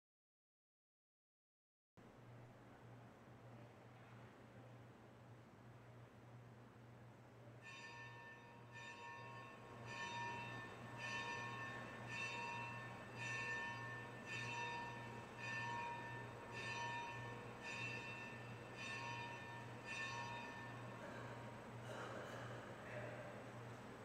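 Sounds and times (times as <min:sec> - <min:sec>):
low steady hum: 0:02.0 - 0:24.0
bell tolling: 0:07.6 - 0:21.4.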